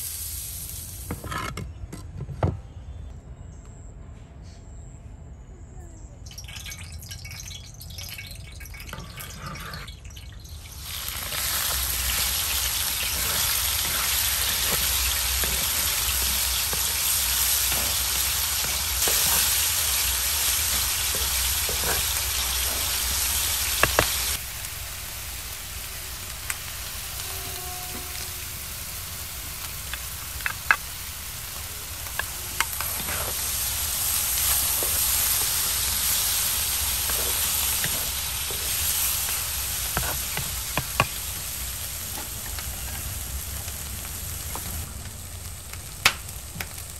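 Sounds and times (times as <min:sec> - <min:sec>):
chicken sizzling in hot oil: 0:00.0 - 0:01.2, 0:06.3 - 0:46.9.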